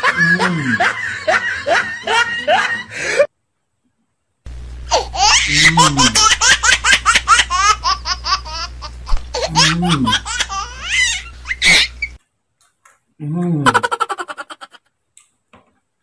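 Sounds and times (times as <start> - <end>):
steady low hum: 4.4 - 12.2
rapid high-pitched laughter: 4.9 - 12.1.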